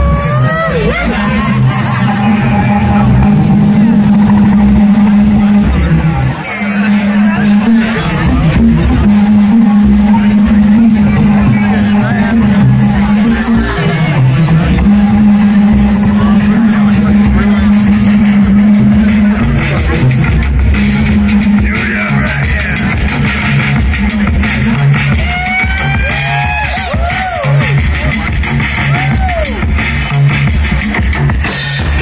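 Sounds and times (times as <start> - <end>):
dense electronic texture: 0.0 - 29.0
rumbling bass: 0.0 - 32.0
synthesizer low drone: 0.0 - 32.0
low thumps: 1.1 - 25.2.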